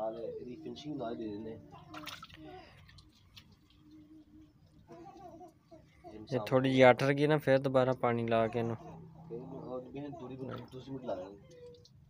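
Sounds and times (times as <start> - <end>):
water splash: 1.9 - 3.8.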